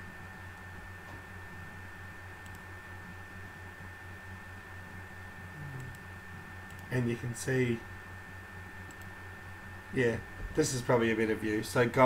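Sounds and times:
low hum and hiss: 0:00.0 - 0:12.0
faint clicks: 0:08.8 - 0:09.1.

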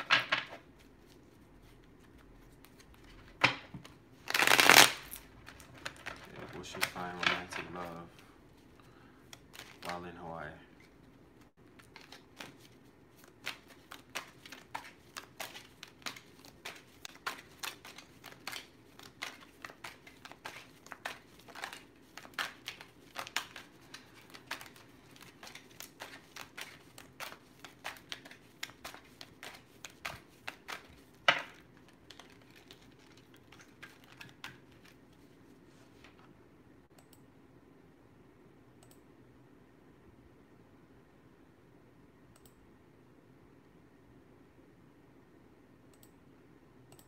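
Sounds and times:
cards being shuffled: 0:00.0 - 0:08.1, 0:09.3 - 0:36.3.

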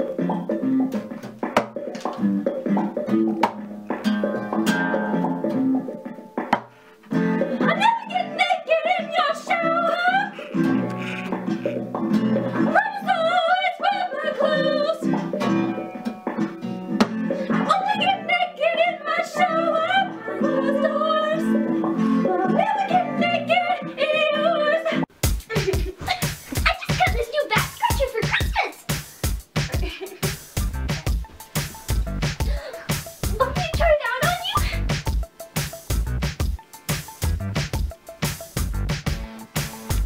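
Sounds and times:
acoustic guitar strumming: 0:00.0 - 0:12.8, 0:15.0 - 0:17.8
person singing: 0:07.4 - 0:15.2, 0:17.3 - 0:26.9.

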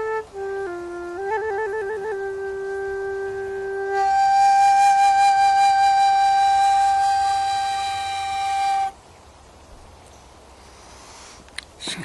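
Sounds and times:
tin whistle high note: 0:00.0 - 0:09.0.

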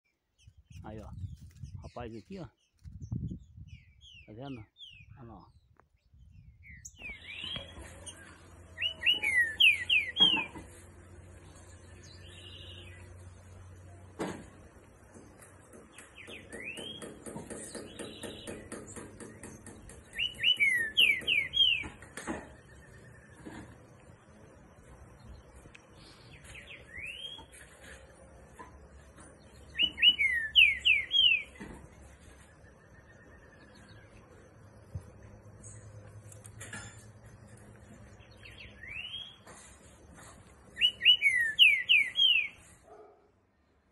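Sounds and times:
faint high bird chirps: 0:00.4 - 0:10.8, 0:17.7 - 0:36.5, 0:40.7 - 0:42.7
bird whistling song: 0:06.2 - 0:10.7, 0:19.2 - 0:22.0, 0:26.0 - 0:27.6, 0:29.6 - 0:31.6, 0:38.2 - 0:39.5, 0:40.7 - 0:42.7.

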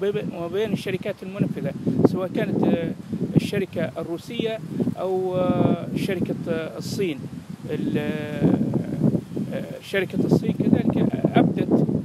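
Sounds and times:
man speaking: 0:00.0 - 0:11.8.

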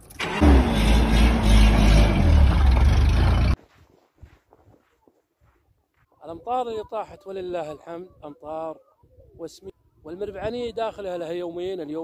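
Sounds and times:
vehicle engine starting and running: 0:00.0 - 0:03.6.

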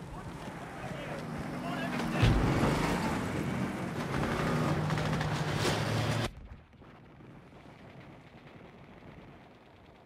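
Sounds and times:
armoured car engine running: 0:00.0 - 0:06.3.

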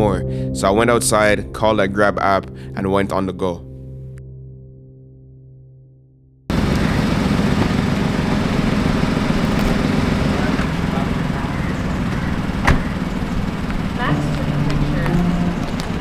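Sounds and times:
car engine running: 0:06.5 - 0:16.0
street noise: 0:06.5 - 0:16.0
car door shutting: 0:12.1 - 0:13.2.

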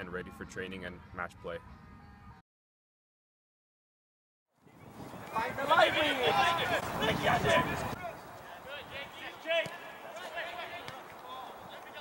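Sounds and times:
players calling and shouting: 0:04.8 - 0:12.0.

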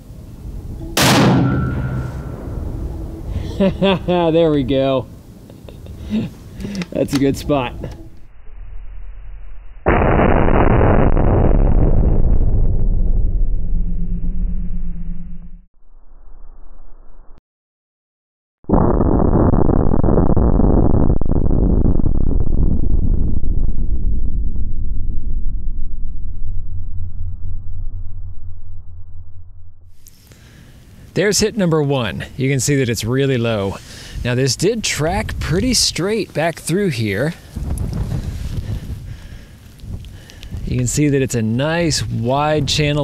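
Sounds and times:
slowed-down bullet impact boom: 0:00.5 - 0:04.1, 0:08.4 - 0:15.7, 0:18.7 - 0:30.0.

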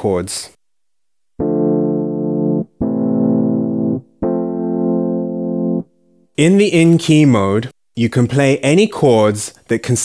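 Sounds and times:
held keyboard chords: 0:01.4 - 0:06.4.

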